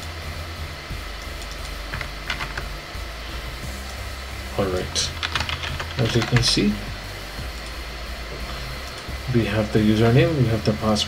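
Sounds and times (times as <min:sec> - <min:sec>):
steady low hum: 0:00.0 - 0:11.0
keyboard typing: 0:01.3 - 0:02.7, 0:05.0 - 0:06.6.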